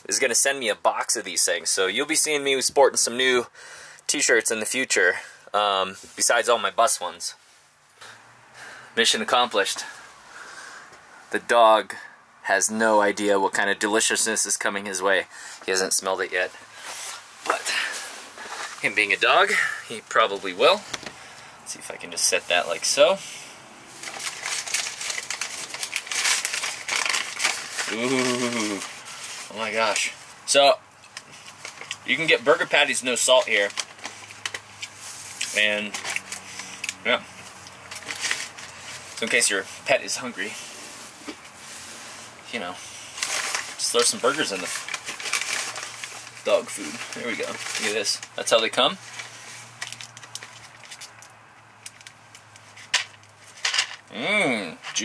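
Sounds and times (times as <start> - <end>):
paper bag crinkling and rustling: 23.9 - 54.0.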